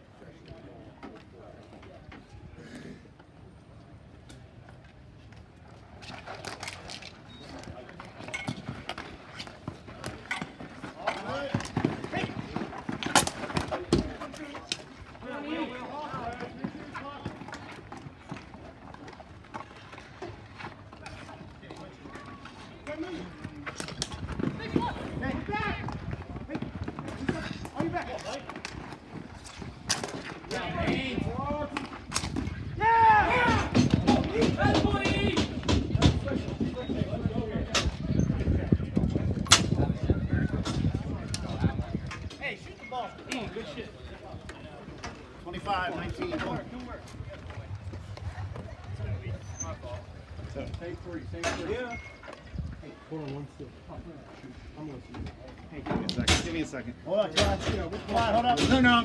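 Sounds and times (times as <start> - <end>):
players shouting: 32.7 - 35.5.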